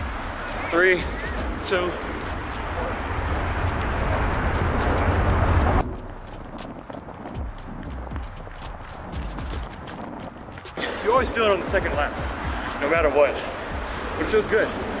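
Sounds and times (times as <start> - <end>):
running footsteps on rubber track: 0.0 - 15.0
wind noise on microphone: 0.0 - 15.0.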